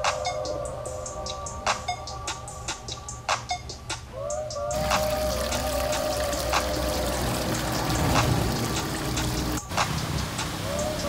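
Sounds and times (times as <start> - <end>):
background music: 0.0 - 11.0
fountain water splashing into basin: 4.8 - 10.8.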